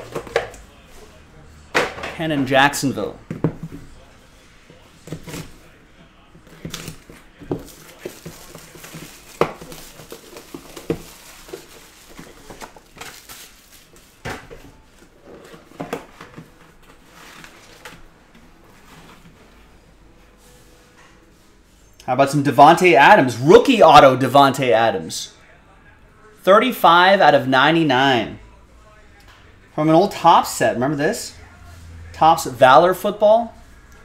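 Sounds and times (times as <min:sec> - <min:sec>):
plastic wrap crinkling: 0:06.6 - 0:18.0.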